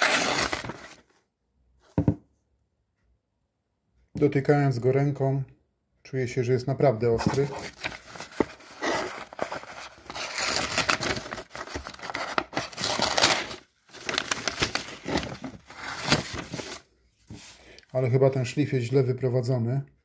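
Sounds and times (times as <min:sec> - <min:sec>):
knife tearing paper: 0:00.0 - 0:00.9, 0:07.6 - 0:16.8.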